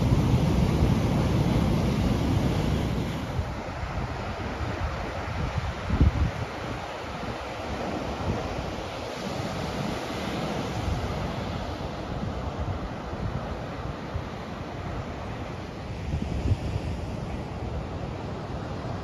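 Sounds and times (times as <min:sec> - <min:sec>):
surf breaking on sandy beach: 0:00.0 - 0:19.0
wind buffeting microphone: 0:00.0 - 0:19.0.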